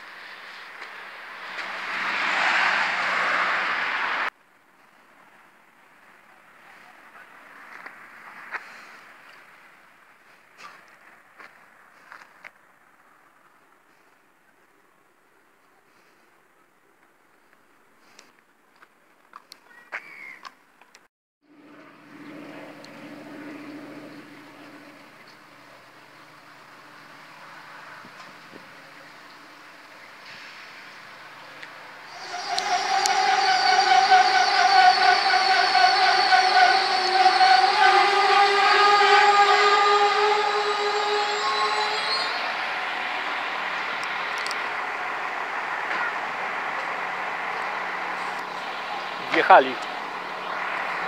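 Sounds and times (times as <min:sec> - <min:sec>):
train whine: 0:00.0 - 0:04.3, 0:21.4 - 0:51.0
train low hum: 0:00.0 - 0:04.4, 0:21.4 - 0:51.0.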